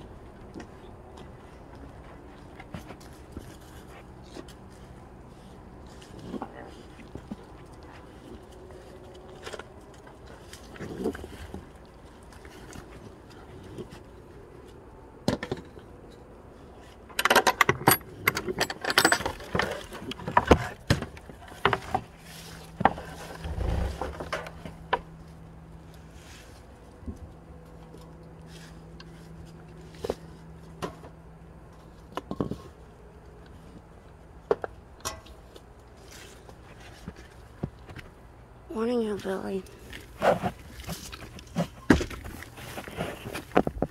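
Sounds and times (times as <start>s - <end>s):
low steady hum: 0.0s - 43.9s.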